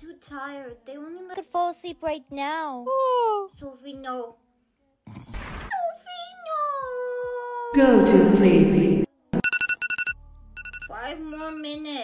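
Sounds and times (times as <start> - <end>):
electronic alarm beeping: 7.8 - 11.0.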